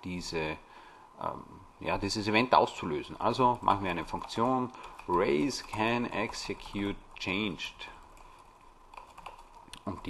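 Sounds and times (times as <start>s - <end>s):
computer keyboard typing: 3.1s - 10.0s.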